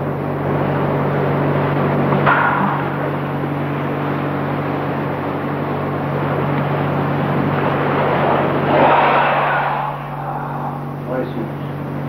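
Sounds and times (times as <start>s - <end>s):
low hum: 0.0s - 12.0s
rush of noise: 8.0s - 11.7s.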